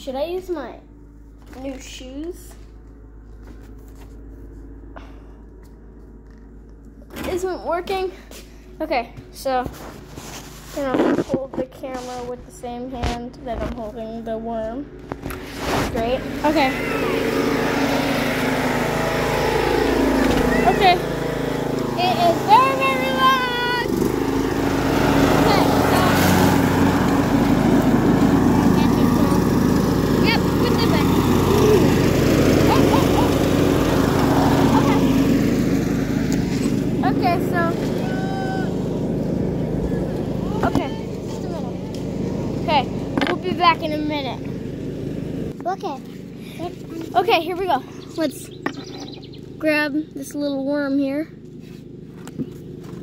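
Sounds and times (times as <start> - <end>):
engine droning: 0.0 - 53.0
voices: 15.8 - 35.9, 36.6 - 44.8, 45.6 - 51.3.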